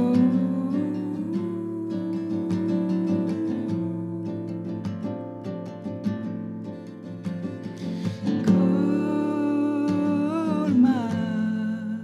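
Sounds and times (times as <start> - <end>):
acoustic guitar strums: 4.5 - 8.9.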